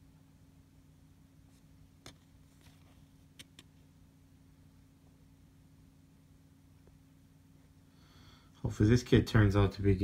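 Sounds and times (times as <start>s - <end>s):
faint steady hum: 0.0s - 10.0s
soft clicks of cards handled: 2.0s - 3.8s.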